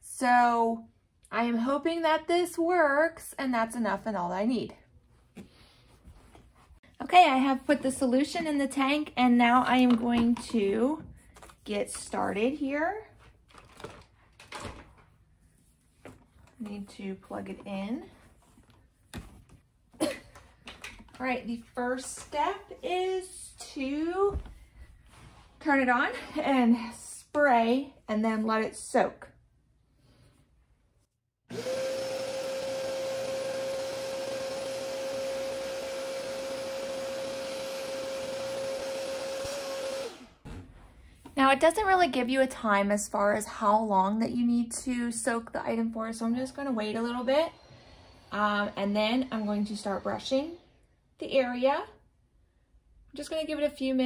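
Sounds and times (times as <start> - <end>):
spot cleaner motor whining: 31.5 - 40.4, 47.0 - 50.4.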